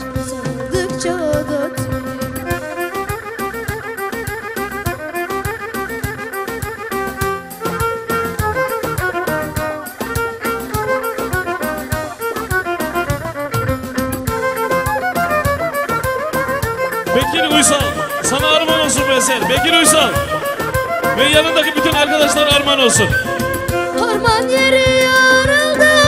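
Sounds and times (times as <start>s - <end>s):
bowed spike fiddle folk tune: 0.0s - 26.0s.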